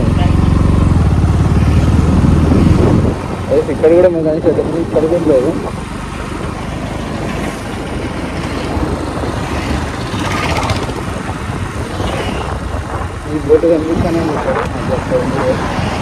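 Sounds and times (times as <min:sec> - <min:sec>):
motorcycle engine: 0:00.0 - 0:16.0
wind noise on microphone: 0:01.2 - 0:16.0
person speaking: 0:13.3 - 0:16.0.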